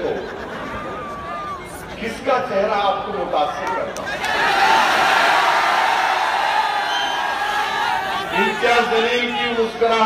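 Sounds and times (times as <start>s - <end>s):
large crowd cheering and shouting: 0.5s - 2.0s, 4.0s - 10.0s.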